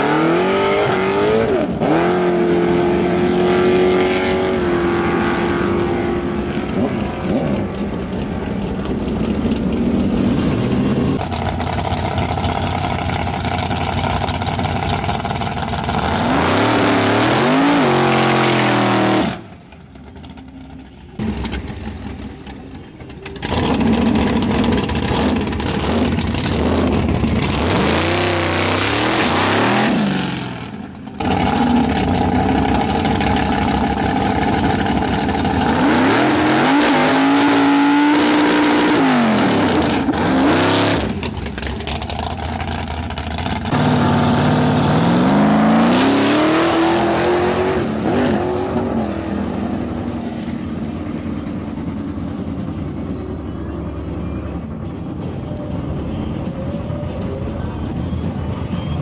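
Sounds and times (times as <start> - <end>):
racing car engine revving hard: 0.0 - 7.6, 15.9 - 19.5, 23.4 - 41.3, 43.5 - 49.3.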